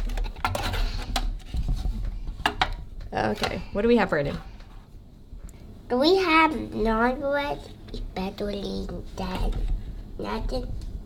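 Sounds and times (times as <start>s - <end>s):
metal boxes scraping on table: 0.4s - 1.9s.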